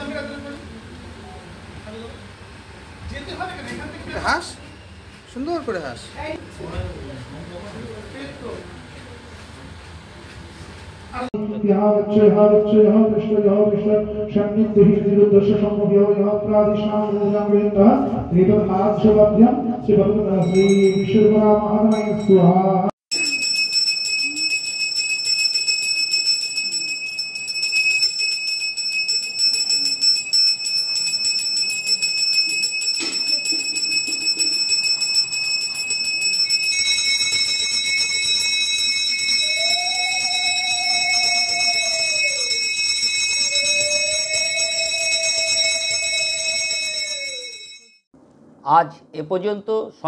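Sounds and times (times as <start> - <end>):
hand bell ringing rapidly: 20.4 - 21.3, 21.9 - 22.4, 23.1 - 48.0.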